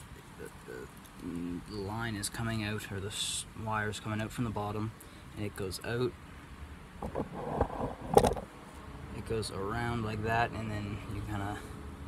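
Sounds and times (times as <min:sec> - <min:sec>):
wire rustling and scraping on stick: 0:07.0 - 0:08.8.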